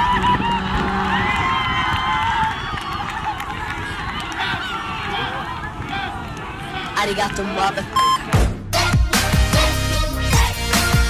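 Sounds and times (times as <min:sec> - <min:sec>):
group shouting and cheering: 0:00.0 - 0:11.0.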